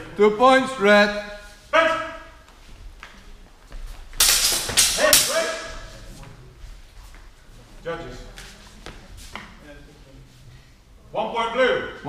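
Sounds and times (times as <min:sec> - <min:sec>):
loud shouts echoing: 0:00.0 - 0:02.4, 0:04.6 - 0:05.9.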